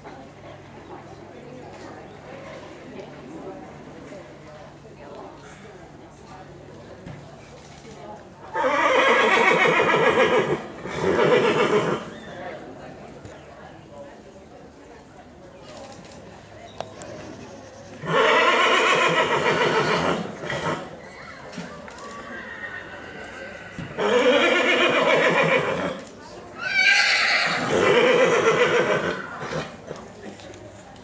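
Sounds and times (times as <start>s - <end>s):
horse whinnying: 8.6s - 12.1s, 18.0s - 21.4s, 22.2s - 26.0s, 26.6s - 29.7s.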